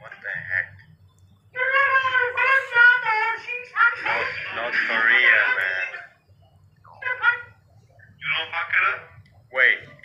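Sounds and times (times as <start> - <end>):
faint low hum: 0.0 - 10.0.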